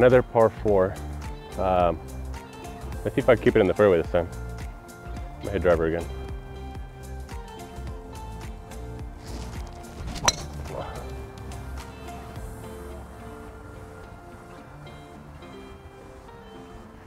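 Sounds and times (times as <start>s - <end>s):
background music: 0.0s - 17.0s
golf club striking ball: 10.0s - 11.1s.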